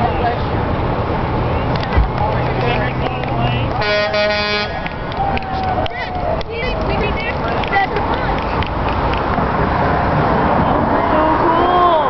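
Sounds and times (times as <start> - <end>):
highway traffic noise: 0.0 - 12.0
vehicle horn: 3.8 - 4.9.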